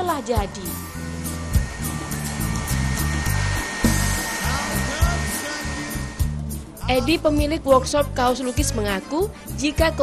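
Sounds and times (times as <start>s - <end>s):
hair dryer blowing: 0.0s - 6.8s
background music: 0.0s - 10.0s.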